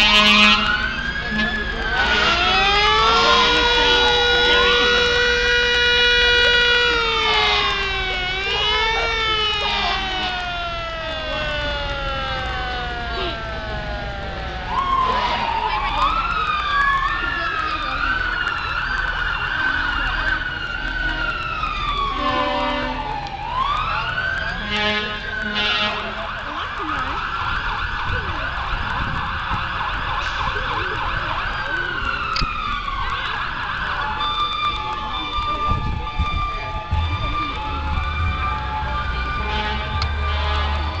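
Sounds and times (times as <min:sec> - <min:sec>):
emergency vehicle sirens wailing: 0:00.0 - 0:41.0
short horn blasts: 0:24.6 - 0:26.2, 0:39.4 - 0:41.0.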